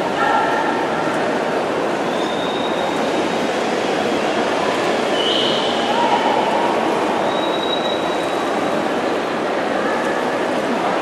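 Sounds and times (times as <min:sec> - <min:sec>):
voices of spectators: 0:00.0 - 0:11.0.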